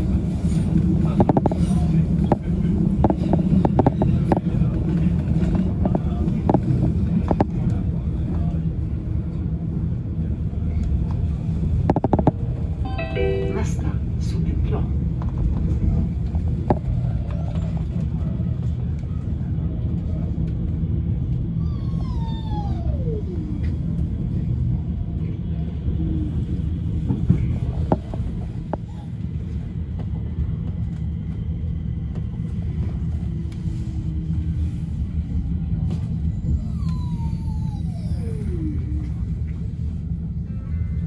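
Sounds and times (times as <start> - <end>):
metro train rumbling on track: 0.0 - 41.0.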